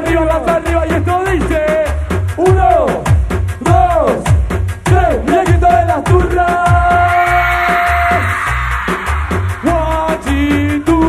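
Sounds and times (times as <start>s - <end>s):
live band music with pulsing bass: 0.0s - 11.0s.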